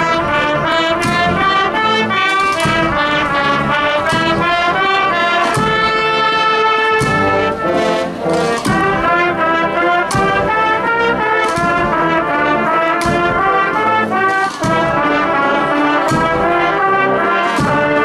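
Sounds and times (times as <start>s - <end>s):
brass band playing a march: 0.0s - 18.0s
percussion strikes: 0.0s - 18.0s.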